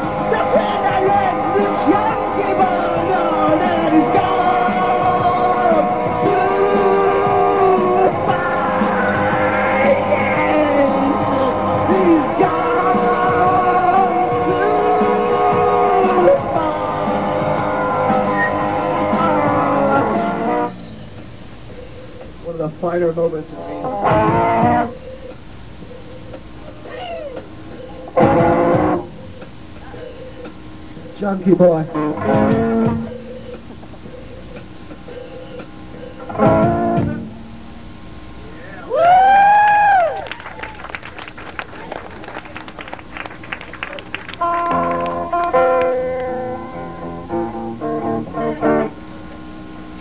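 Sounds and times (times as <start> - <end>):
rock band playing live: 0.0 - 21.3, 23.5 - 25.0, 27.4 - 29.6, 32.0 - 34.2, 35.0 - 37.7, 44.2 - 49.5
bending electric guitar lead: 0.0 - 21.4, 22.3 - 25.1, 26.4 - 38.9, 40.1 - 50.0.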